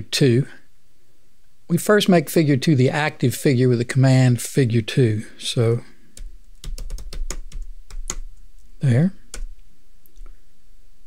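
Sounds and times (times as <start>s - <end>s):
sharp keyboard keystroke: 6.6s - 8.3s.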